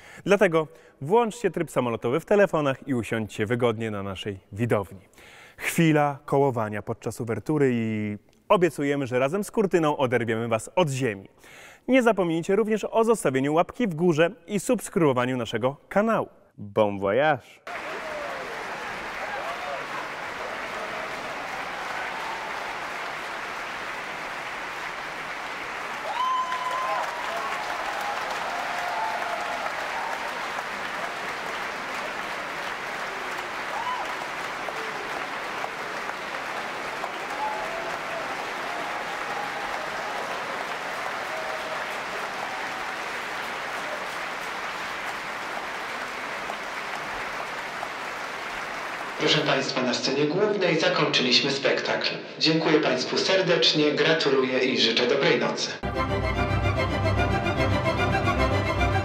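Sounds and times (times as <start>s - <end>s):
audience applauding: 17.7s - 50.0s.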